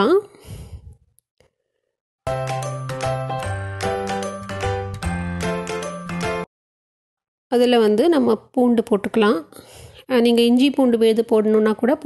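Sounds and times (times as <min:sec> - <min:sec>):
light tune with bass line: 0:02.3 - 0:06.5.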